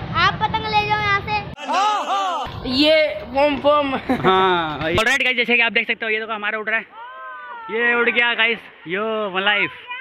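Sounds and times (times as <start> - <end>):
person exclaiming: 1.6 - 2.5.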